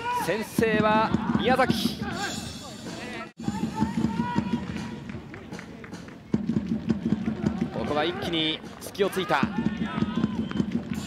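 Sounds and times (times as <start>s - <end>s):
stadium crowd: 0.0s - 11.0s
drums beating a steady rhythm: 0.2s - 11.0s
crowd clapping: 3.8s - 11.0s.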